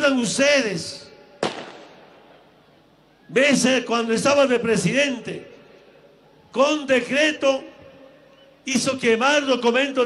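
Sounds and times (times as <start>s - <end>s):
firecracker bang with echo: 1.4s - 2.3s.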